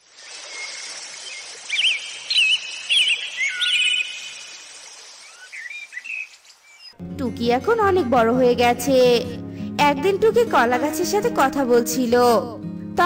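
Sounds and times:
outdoor ambience hiss: 0:00.0 - 0:07.0
birds chirping: 0:00.1 - 0:07.0.

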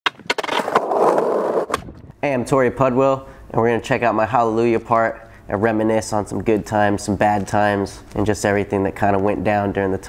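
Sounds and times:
skateboard wheels rolling on pavement: 0:00.1 - 0:02.0.

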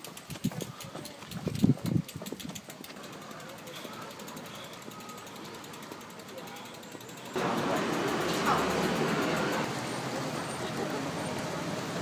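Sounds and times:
road traffic noise: 0:02.6 - 0:12.0.

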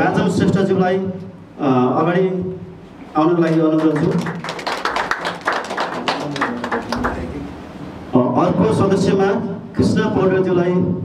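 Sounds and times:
audience clapping: 0:03.4 - 0:07.5.

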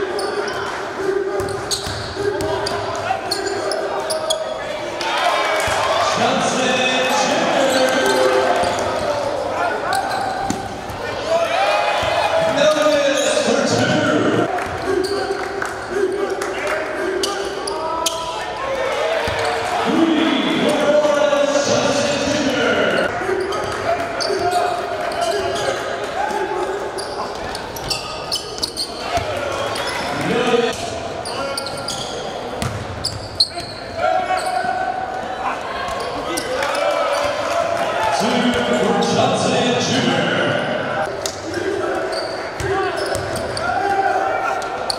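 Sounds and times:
players and crowd shouting: 0:00.0 - 0:32.6, 0:33.4 - 0:44.9.

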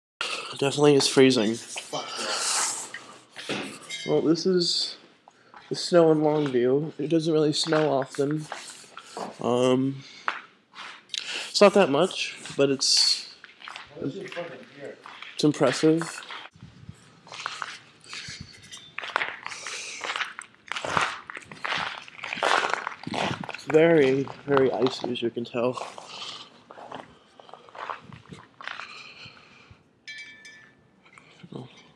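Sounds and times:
person breathy hiss: 0:01.8 - 0:03.6
footsteps crunching on icy snow: 0:11.7 - 0:16.6, 0:17.2 - 0:29.3.

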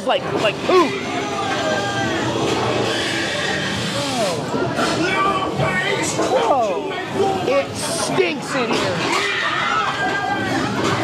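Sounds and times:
murmur of voices: 0:00.0 - 0:11.0
haunted soundtrack music and noise: 0:00.2 - 0:06.3.

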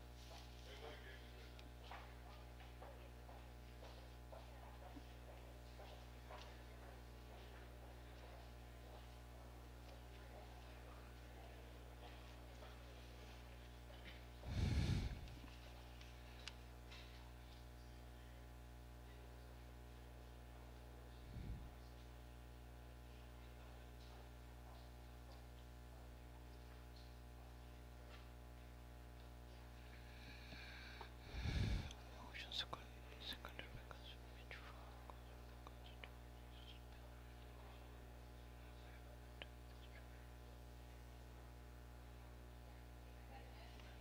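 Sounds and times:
faint electrical hum: 0:00.0 - 0:44.0
faint whispering: 0:14.4 - 0:15.6, 0:21.0 - 0:21.9, 0:30.2 - 0:37.8, 0:38.6 - 0:40.3
breath puff on microphone: 0:14.5 - 0:15.3, 0:31.2 - 0:31.9.

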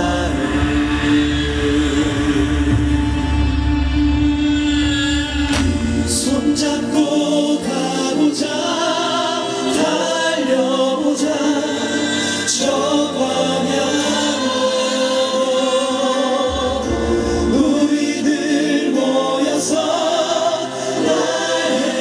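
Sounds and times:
choir singing in harmony: 0:00.0 - 0:22.0
live band accompaniment: 0:00.0 - 0:22.0.

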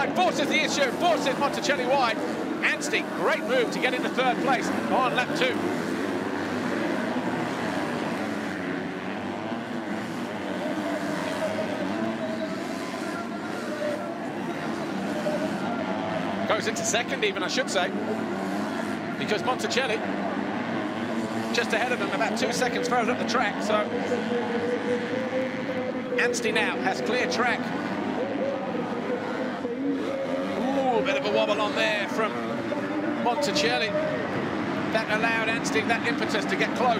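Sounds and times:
motocross bike engines revving: 0:00.0 - 0:36.9.

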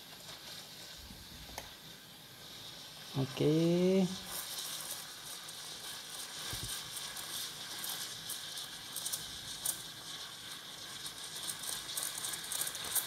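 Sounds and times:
steam wand hissing in milk: 0:00.0 - 0:13.0.

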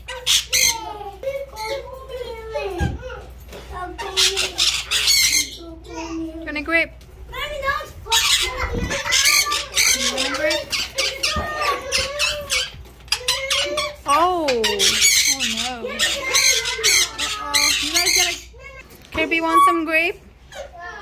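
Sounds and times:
parrots squawking harshly: 0:00.0 - 0:01.0, 0:03.8 - 0:06.0, 0:08.1 - 0:20.9.

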